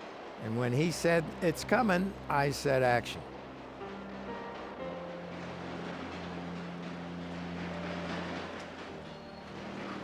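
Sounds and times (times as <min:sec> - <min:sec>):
elevated train passing: 0:00.0 - 0:10.0.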